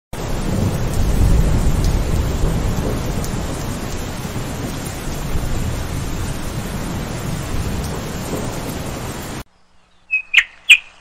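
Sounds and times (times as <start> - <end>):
rain on brick paving: 0.1 - 9.5.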